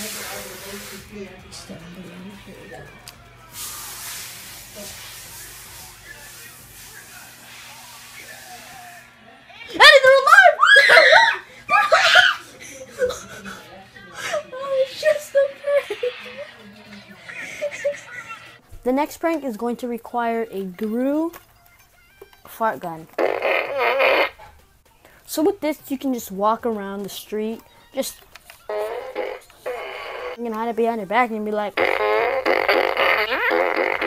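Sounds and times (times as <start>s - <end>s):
child screaming: 9.7s - 12.4s
toy fart noise: 23.1s - 24.5s, 28.7s - 30.4s, 31.8s - 34.0s.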